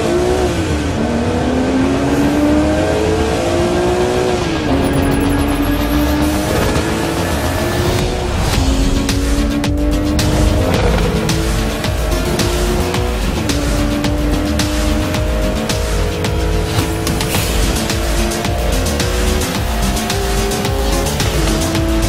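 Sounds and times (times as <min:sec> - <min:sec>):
car engine accelerating hard: 0:00.0 - 0:22.0.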